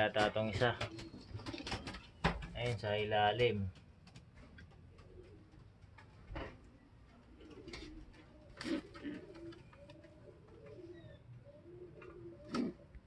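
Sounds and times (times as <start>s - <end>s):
pigeons cooing softly: 0.0s - 13.0s.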